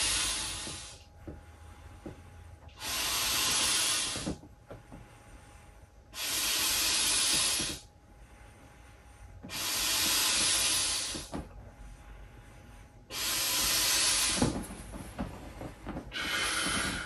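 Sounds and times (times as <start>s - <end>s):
air hissing into inflatable: 0.0s - 1.1s, 2.7s - 4.5s, 6.1s - 7.9s, 9.4s - 11.5s, 13.1s - 17.0s.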